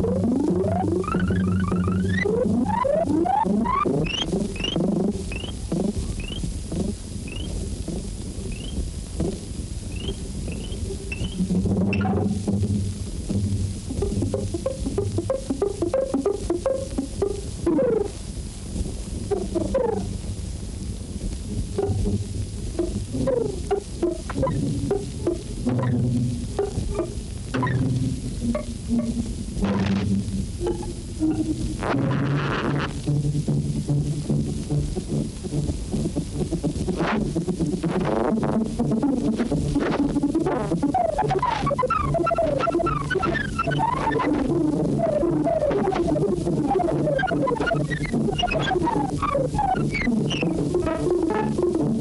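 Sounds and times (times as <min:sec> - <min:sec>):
rising synthetic chirps: 0:00.7 - 0:05.6, 0:06.2 - 0:06.5, 0:07.3 - 0:07.5, 0:08.5 - 0:08.8, 0:09.9 - 0:12.2
low buzzing synthetic notes: 0:21.6 - 0:51.8.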